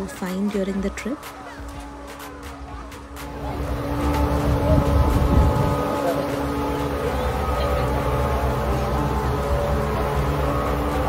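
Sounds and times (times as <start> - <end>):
outboard motors droning: 0.0 - 11.0.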